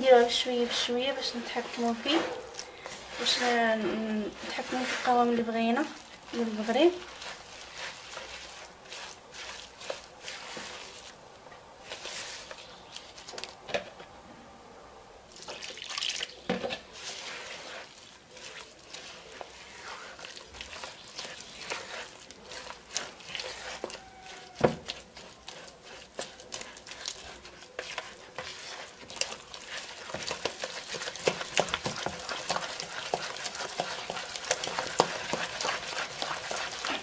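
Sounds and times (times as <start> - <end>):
spatula squelching wet dough: 0.0 - 13.6, 15.3 - 37.0.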